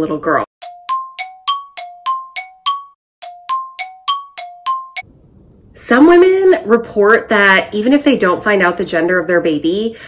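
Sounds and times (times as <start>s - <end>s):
bright chime notes: 0.6s - 5.0s.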